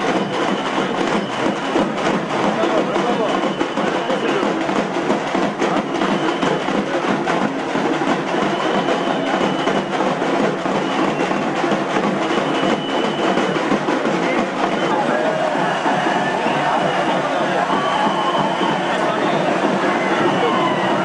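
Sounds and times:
crowd of many voices: 0.0s - 21.0s
drums beating: 0.0s - 21.0s.

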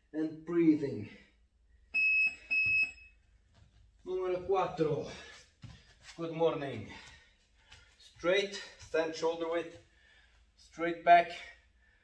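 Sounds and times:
digital timer beeps: 2.0s - 3.2s.

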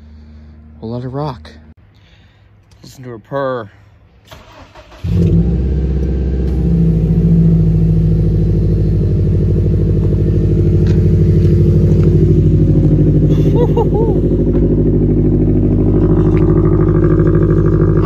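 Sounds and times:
car engine cold start idling: 4.3s - 18.0s.

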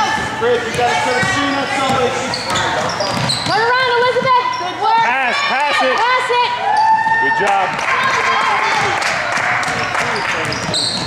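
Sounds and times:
basketball dribbling: 0.0s - 5.0s, 7.9s - 11.0s
sneakers squeaking on gym floor: 0.0s - 5.1s, 9.7s - 11.0s.

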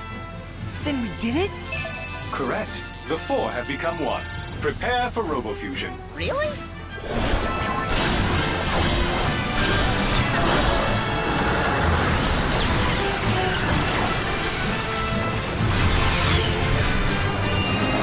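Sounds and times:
dramatic cartoon music: 0.0s - 18.0s.

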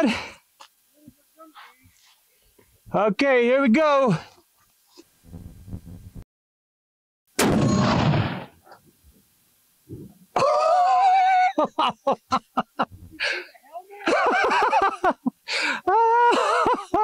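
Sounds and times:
rifle shot: 7.4s - 8.6s
man laughing: 10.4s - 17.0s.

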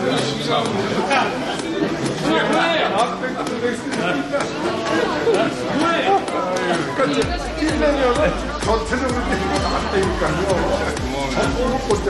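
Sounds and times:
people chatting in a hall: 0.0s - 12.0s.

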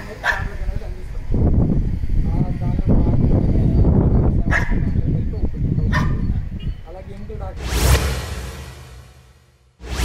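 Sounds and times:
dog barking: 0.2s - 0.6s, 4.5s - 4.9s, 5.9s - 6.3s.

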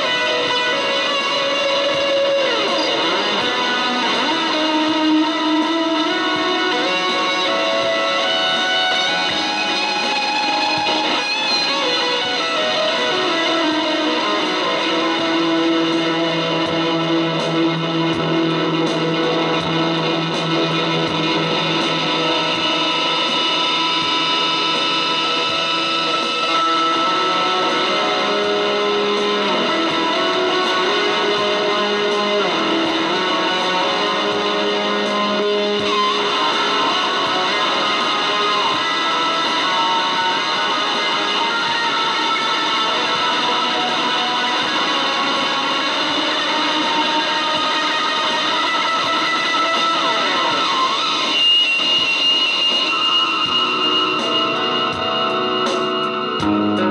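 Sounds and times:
electric guitar improvising: 0.0s - 56.9s.

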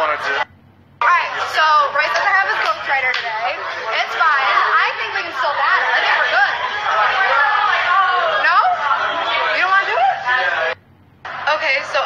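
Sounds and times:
party chatter: 0.0s - 12.0s.

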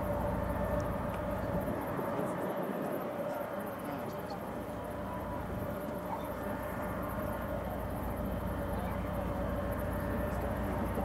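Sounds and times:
constant mid-pitched tone: 0.0s - 11.0s
ship machinery hum and rumble: 0.0s - 11.0s.

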